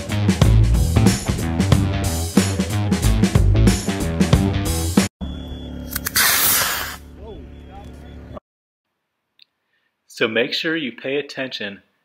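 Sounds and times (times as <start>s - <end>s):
rock music: 0.0s - 5.1s
rocket motor rushing hiss: 5.9s - 7.0s.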